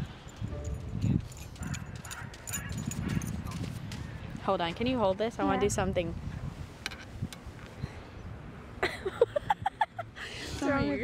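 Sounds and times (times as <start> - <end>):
footsteps on sand: 0.5 - 4.9.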